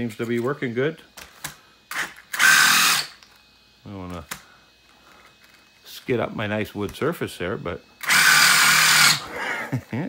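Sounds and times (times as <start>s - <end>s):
electric motor revving wheels: 1.8s - 3.4s, 8.0s - 9.8s.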